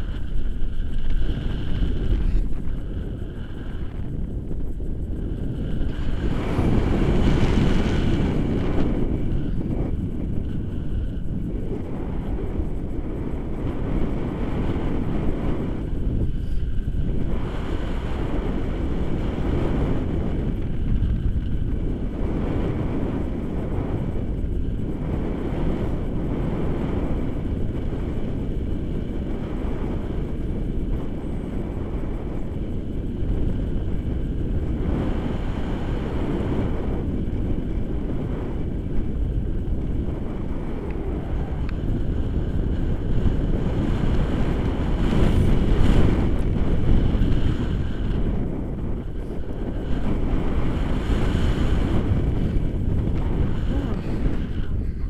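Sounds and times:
wind rumbling on microphone: 0.0s - 55.0s.

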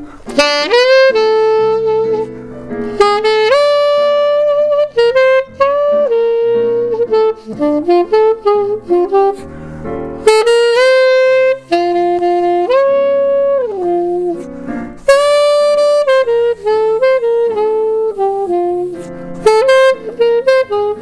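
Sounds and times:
digital piano chords: 0.0s - 21.0s
saxophone jazz melody: 0.0s - 21.0s.

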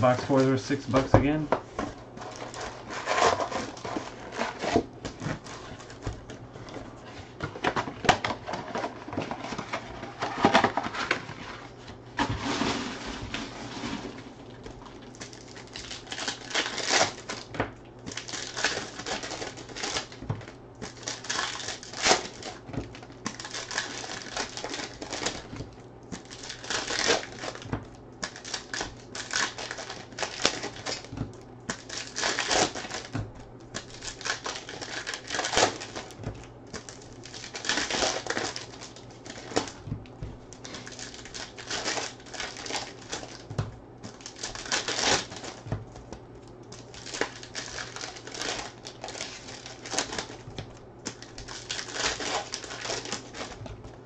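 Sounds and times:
plastic wrappers crinkling and tearing: 0.0s - 54.0s.

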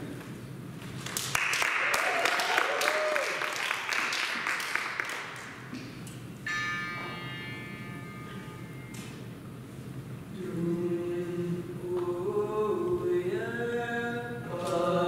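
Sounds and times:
audience clapping: 1.0s - 5.7s
person whooping: 1.9s - 3.5s.

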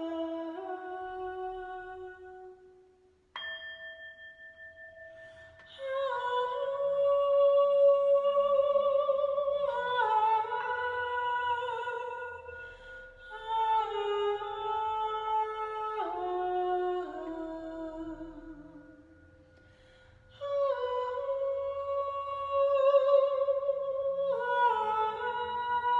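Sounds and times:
woman singing wordless lines: 0.0s - 2.6s, 5.6s - 19.0s, 20.3s - 25.9s
wind chime ringing: 3.4s - 5.9s.

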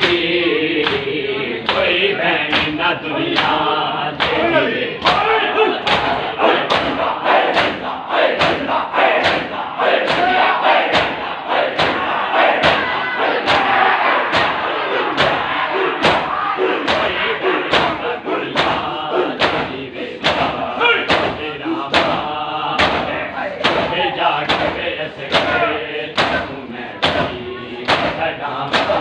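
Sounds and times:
hands slapping chests: 0.8s - 1.0s, 2.5s - 2.8s, 4.2s - 4.4s, 5.8s - 7.8s, 8.4s - 11.2s, 27.0s - 29.0s
men shouting together: 4.3s - 19.5s, 20.6s - 21.8s.

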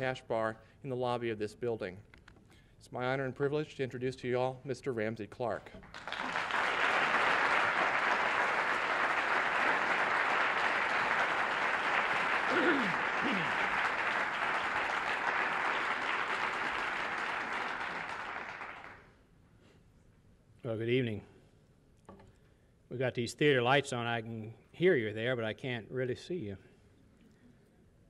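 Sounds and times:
audience applauding: 5.8s - 19.0s.

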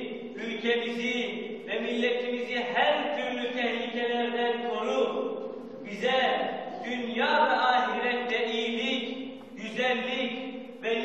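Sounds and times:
man chanting religious recitation: 0.0s - 11.0s.

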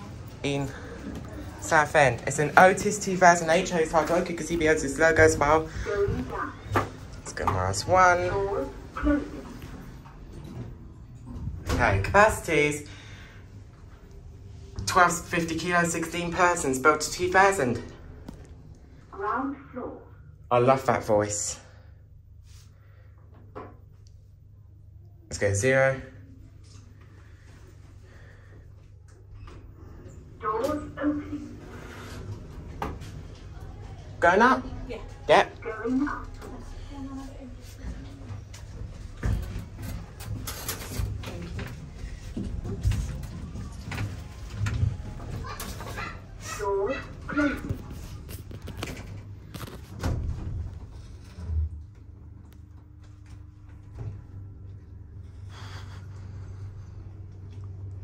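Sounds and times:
lift travelling with low hum: 2.4s - 20.2s, 26.4s - 58.0s.

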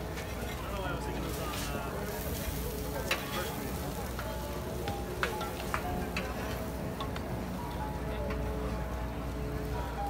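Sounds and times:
pancakes sizzling on a griddle: 0.3s - 6.7s.

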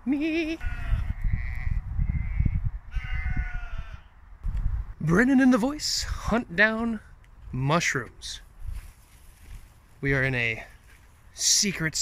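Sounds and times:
sheep bleating: 0.4s - 4.1s.

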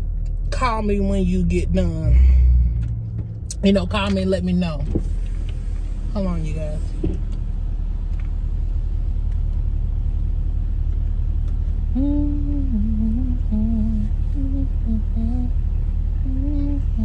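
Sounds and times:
car engine idling: 0.0s - 17.0s
woman humming: 11.9s - 15.6s, 16.2s - 17.0s.

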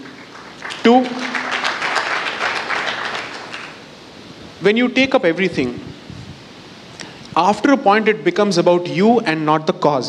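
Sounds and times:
audience applauding: 0.0s - 3.8s.

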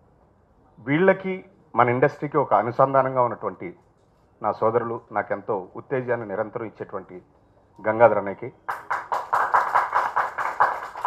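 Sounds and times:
small audience applauding: 8.7s - 11.0s.

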